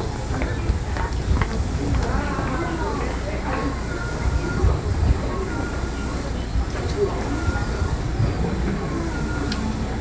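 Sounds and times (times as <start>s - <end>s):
electric train rumbling and humming: 0.0s - 10.0s.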